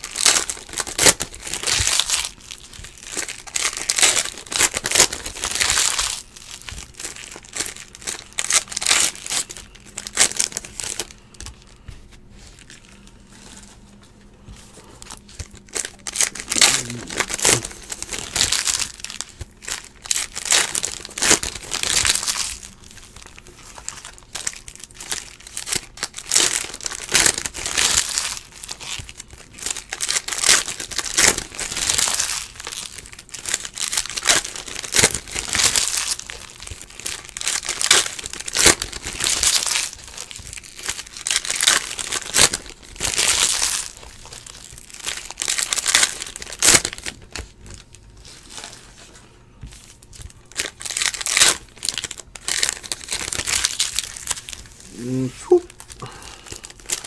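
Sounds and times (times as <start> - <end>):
wrapper tearing: 0.0 - 11.6, 15.0 - 48.8, 50.0 - 57.0
foil wrappers crinkling: 0.0 - 57.0.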